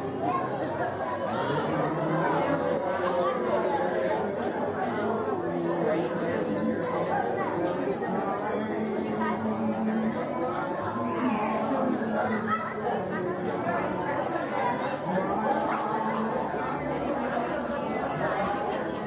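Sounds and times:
audience chattering in a hall: 0:00.0 - 0:19.0.

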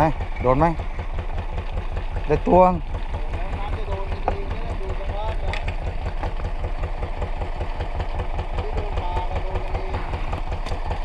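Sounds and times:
boat engine idling: 0:00.0 - 0:11.0.

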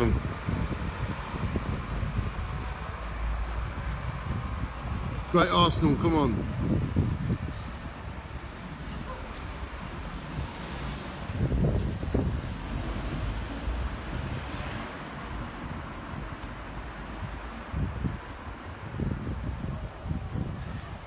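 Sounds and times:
cars rumbling along street: 0:00.0 - 0:21.0.

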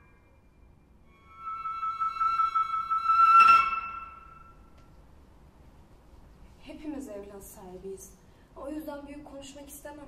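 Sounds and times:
flute long high note: 0:00.0 - 0:04.8.

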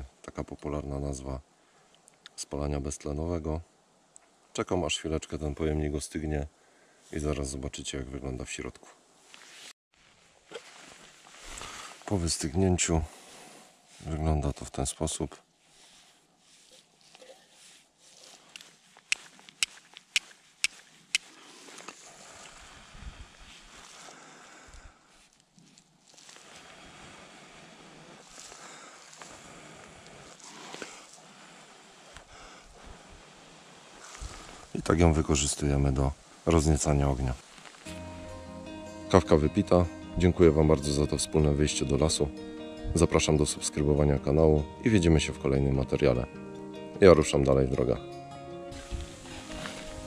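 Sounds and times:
faint outdoor hiss: 0:00.0 - 0:50.0
soft handling noise: 0:09.2 - 0:22.6, 0:48.8 - 0:50.0
cloth rustling in hands: 0:09.2 - 0:27.3, 0:28.2 - 0:38.5, 0:48.7 - 0:50.0.

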